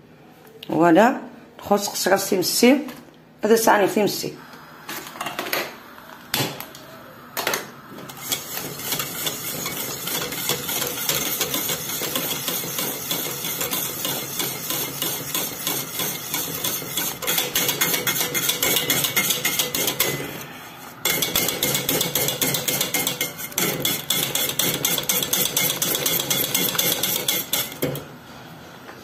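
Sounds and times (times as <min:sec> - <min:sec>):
metal whisk clattering in pot: 0:08.2 - 0:20.3, 0:21.0 - 0:28.0.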